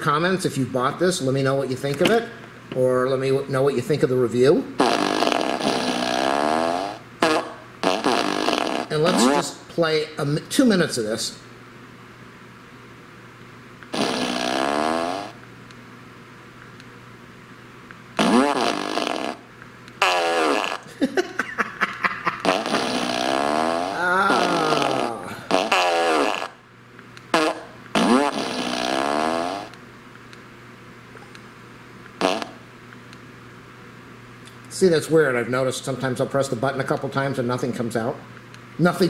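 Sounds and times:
recorded fart sounds from speaker: 0:04.7 - 0:09.6, 0:13.9 - 0:15.4, 0:18.2 - 0:21.0, 0:22.3 - 0:26.6, 0:27.3 - 0:29.8, 0:32.2 - 0:32.7.

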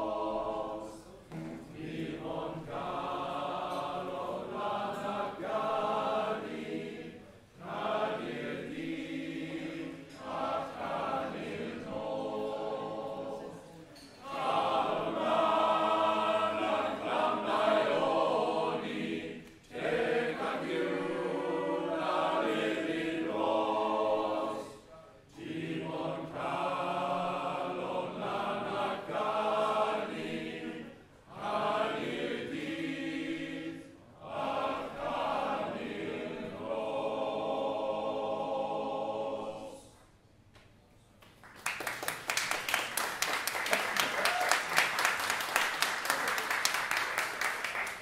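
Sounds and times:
male voice choir singing: 0:00.0 - 0:13.6, 0:14.2 - 0:39.9.

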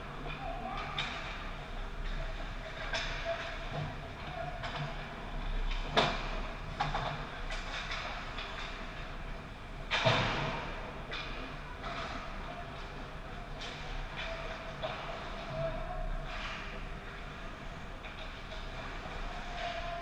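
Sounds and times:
hockey sticks and puck clacking: 0:05.7 - 0:09.2.

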